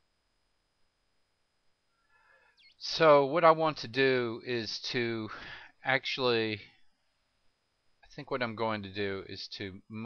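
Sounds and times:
recording hiss: 2.1s - 6.7s, 8.0s - 10.0s
man speaking: 2.8s - 6.7s, 8.1s - 10.0s.

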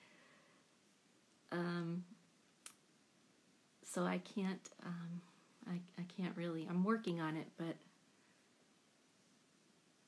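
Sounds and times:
woman speaking: 1.5s - 2.2s, 3.8s - 7.9s.

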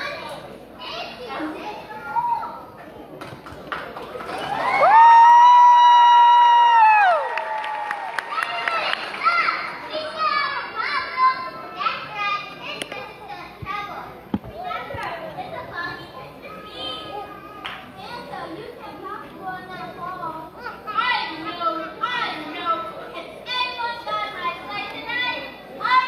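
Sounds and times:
children talking and calling out: 0.0s - 3.0s, 8.1s - 26.0s.

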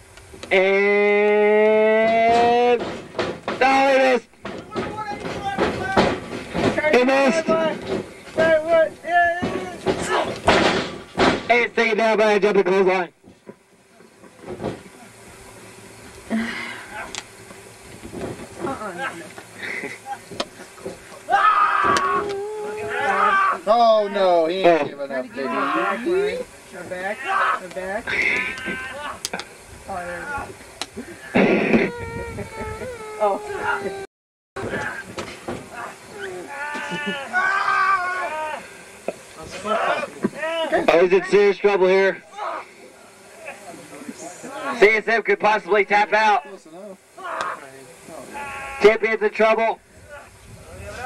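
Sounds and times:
low steady hiss: 0.0s - 51.0s
high-pitched wailing cry: 21.3s - 23.7s, 31.7s - 35.0s, 35.7s - 38.7s.

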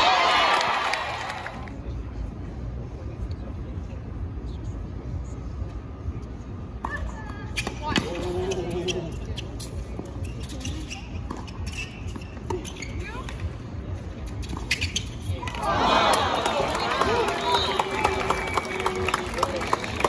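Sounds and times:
crowd cheering: 0.0s - 1.6s, 15.6s - 20.0s
crowd murmur: 15.4s - 20.0s.

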